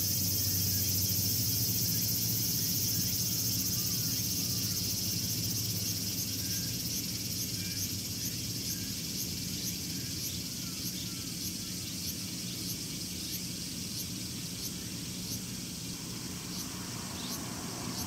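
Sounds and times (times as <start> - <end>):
cicadas buzzing: 0.0 - 18.0.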